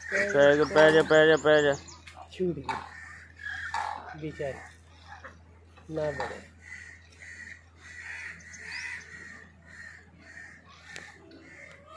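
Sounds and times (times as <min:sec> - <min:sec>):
birds cawing: 0:00.0 - 0:11.9
steady low hum: 0:00.0 - 0:11.9.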